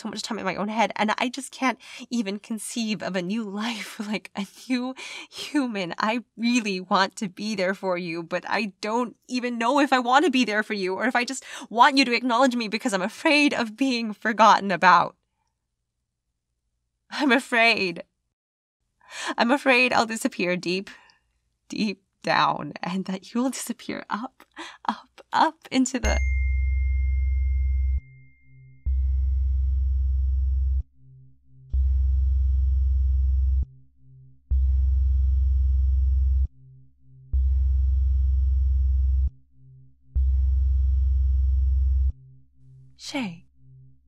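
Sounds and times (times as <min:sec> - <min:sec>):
person speaking: 0:25.4 - 0:26.4, 0:43.0 - 0:43.4
faint low pulsing hum: 0:28.8 - 0:30.9, 0:31.7 - 0:39.4, 0:40.2 - 0:42.3
mobile phone vibrating: 0:28.8 - 0:36.7, 0:37.3 - 0:39.4, 0:40.2 - 0:42.3.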